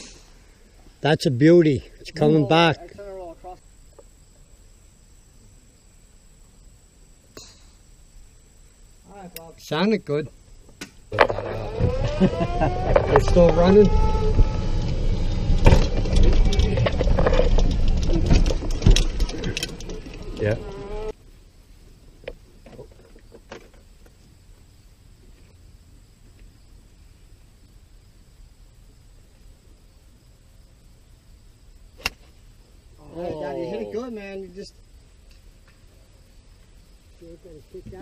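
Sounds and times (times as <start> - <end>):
golf cart engine rumbling: 11.0 - 21.2.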